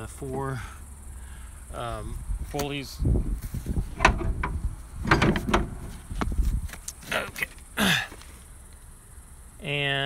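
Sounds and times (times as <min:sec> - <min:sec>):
sharp knocks and scrapes: 0:03.5 - 0:06.5.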